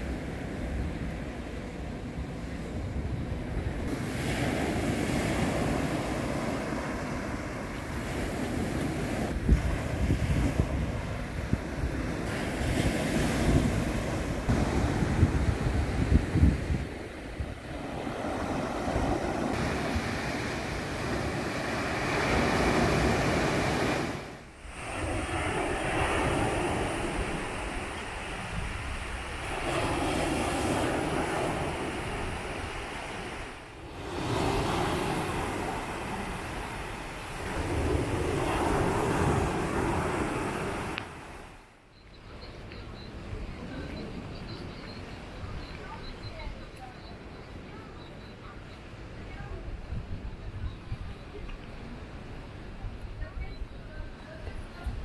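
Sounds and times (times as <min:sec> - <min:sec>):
wind gusting on microphone: 0:00.0 - 0:41.7, 0:42.3 - 0:55.0
surf breaking on beach: 0:03.9 - 0:41.6.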